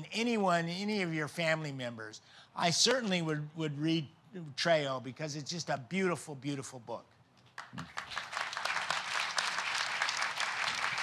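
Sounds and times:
audience applauding: 0:07.6 - 0:11.0.

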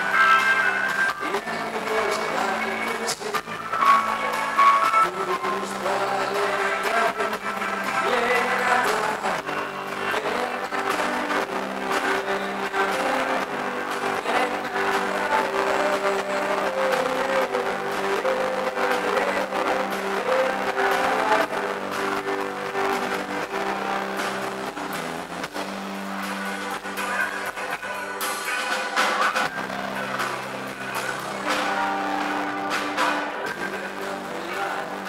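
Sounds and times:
drums: 0:00.0 - 0:35.0
electric guitar chords: 0:00.0 - 0:35.0.

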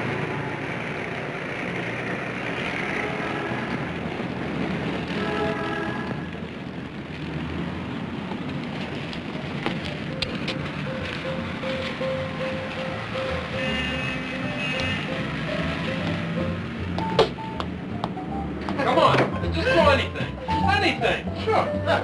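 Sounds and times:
city street noise: 0:00.0 - 0:22.0
background music score: 0:09.8 - 0:22.0.

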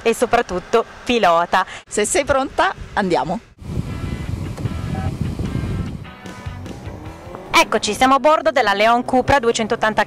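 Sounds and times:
bass-heavy background music: 0:03.6 - 0:10.0.

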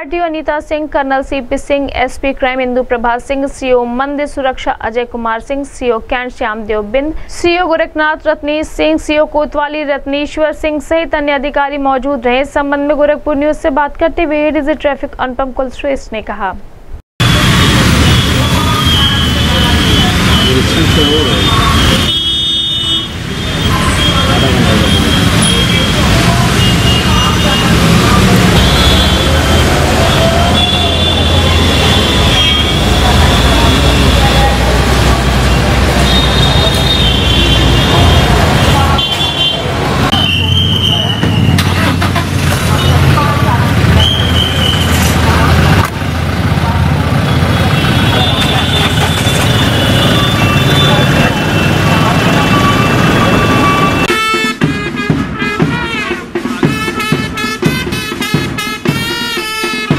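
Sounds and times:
traffic engines rumbling: 0:16.8 - 0:59.9
indistinct voices: 0:18.0 - 0:22.2, 0:23.6 - 0:54.1.

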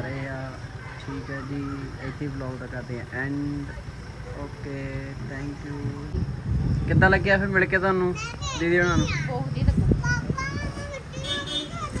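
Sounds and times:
young child's voice: 0:09.9 - 0:12.0.

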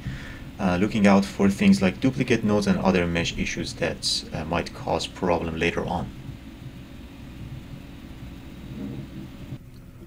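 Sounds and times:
low background rumble: 0:00.0 - 0:10.0
microphone hiss: 0:00.0 - 0:10.0.

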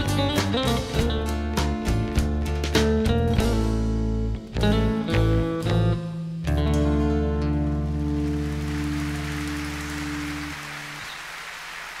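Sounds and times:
audience applause: 0:08.0 - 0:12.0.

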